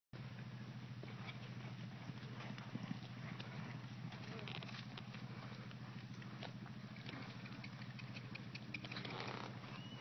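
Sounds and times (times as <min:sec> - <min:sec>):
horse hooves on dirt: 0:00.2 - 0:10.0
steady low hum: 0:00.2 - 0:10.0.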